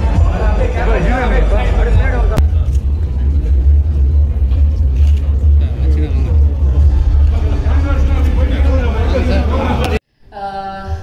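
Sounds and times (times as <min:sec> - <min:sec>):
loud low rumble: 0:00.0 - 0:10.0
voices: 0:00.0 - 0:11.0.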